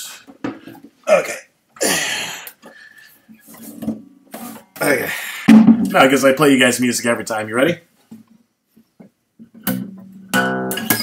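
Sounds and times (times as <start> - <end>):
guitar knocks and clatter: 9.0 - 11.0.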